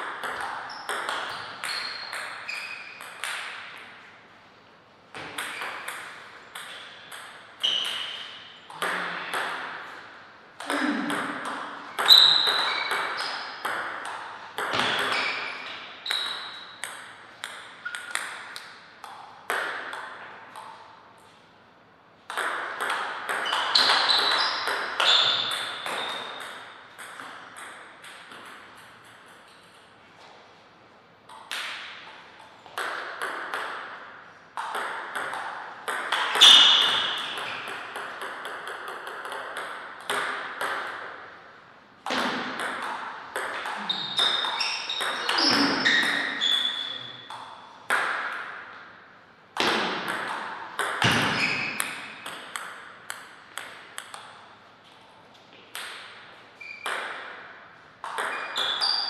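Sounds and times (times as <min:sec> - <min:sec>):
ball bouncing on table: 0:00.0 - 0:03.8, 0:05.1 - 0:10.0, 0:10.6 - 0:20.8, 0:22.3 - 0:29.4, 0:32.7 - 0:34.0, 0:34.6 - 0:41.2, 0:42.0 - 0:48.6, 0:49.6 - 0:54.4, 0:55.7 - 0:57.4, 0:58.0 - 0:59.0
table tennis ball clicking off paddles: 0:00.0 - 0:03.9, 0:10.6 - 0:20.8, 0:31.3 - 0:41.3, 0:49.6 - 0:54.4.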